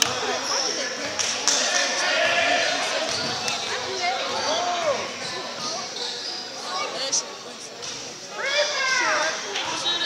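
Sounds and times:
spectators talking and calling out: 0.0s - 10.0s.

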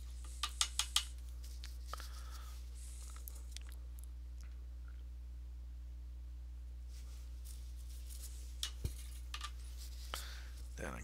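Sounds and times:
brush clicks and scratches: 0.0s - 3.7s
steady low hum: 0.0s - 11.0s.

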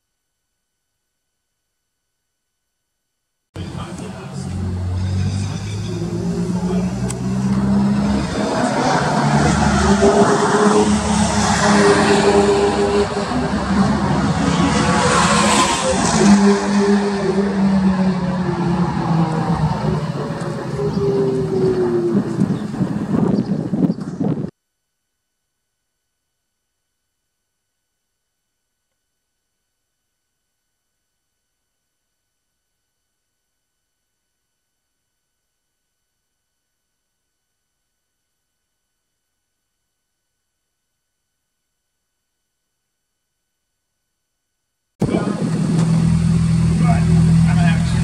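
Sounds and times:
sports car engine passing: 3.6s - 23.3s, 45.0s - 48.0s.

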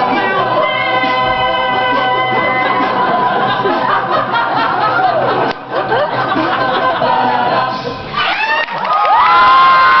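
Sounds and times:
audience cheering and screaming: 8.0s - 10.0s.

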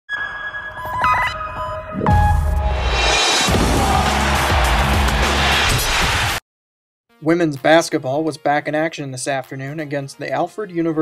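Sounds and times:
held electronic tones: 0.1s - 2.6s.

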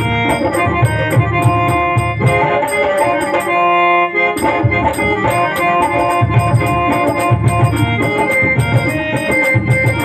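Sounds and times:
electronic keyboard melody: 0.0s - 10.0s
tabla and hand percussion: 0.0s - 10.0s.

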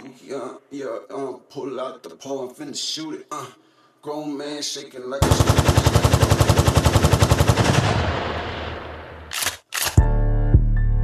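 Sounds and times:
automatic gunfire: 5.2s - 10.0s.

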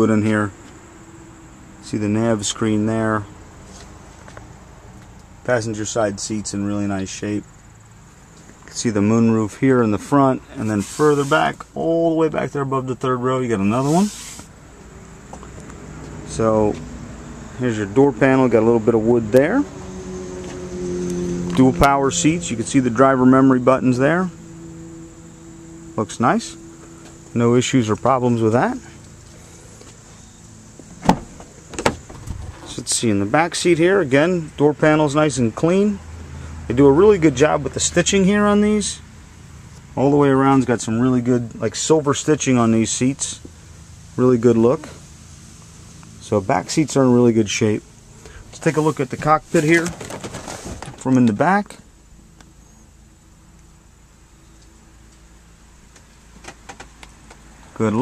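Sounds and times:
low hum inside car cabin: 5.4s - 36.0s.

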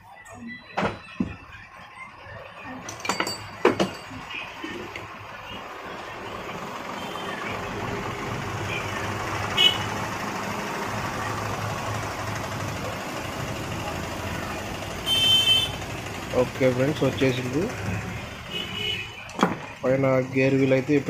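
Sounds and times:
vehicle engine running: 4.2s - 21.0s.

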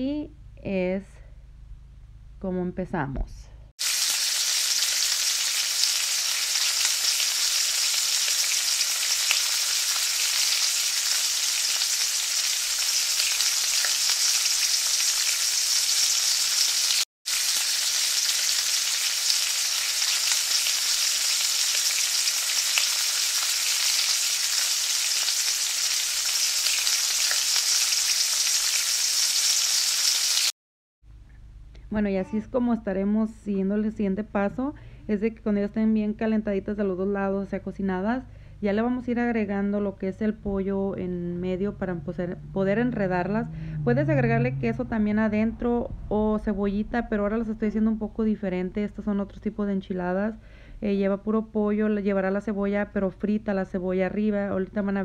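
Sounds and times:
tortillas sizzling in oil: 3.8s - 30.6s.

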